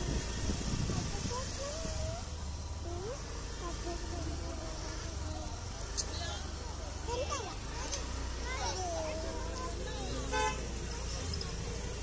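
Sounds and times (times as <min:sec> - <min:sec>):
traffic rumble: 0:00.0 - 0:12.0
faint distant voices: 0:00.1 - 0:12.0.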